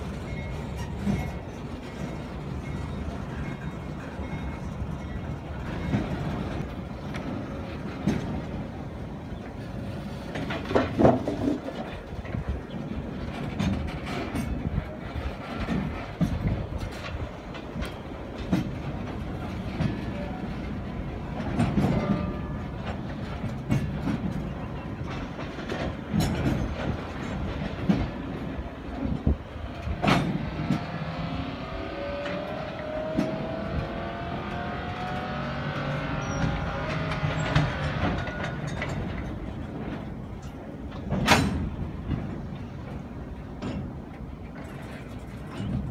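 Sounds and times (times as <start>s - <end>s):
train wheels clacking on rails: 0.0s - 45.9s.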